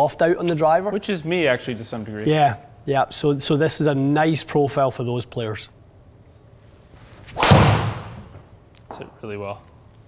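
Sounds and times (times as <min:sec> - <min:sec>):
golf club striking ball: 0:07.4 - 0:08.3.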